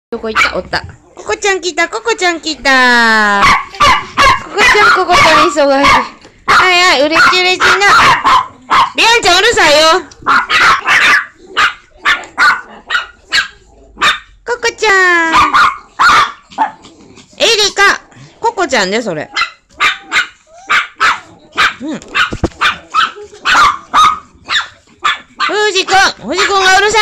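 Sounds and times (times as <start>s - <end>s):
small dog barking: 3.4s - 9.0s, 10.2s - 14.3s, 15.3s - 16.8s, 19.3s - 26.7s.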